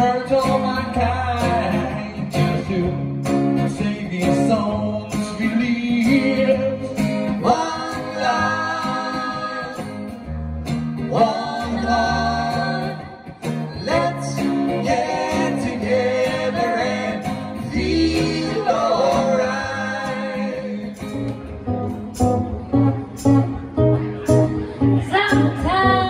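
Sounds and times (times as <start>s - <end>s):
acoustic guitar: 0.0s - 26.0s
woman singing: 11.2s - 13.2s, 25.0s - 26.0s.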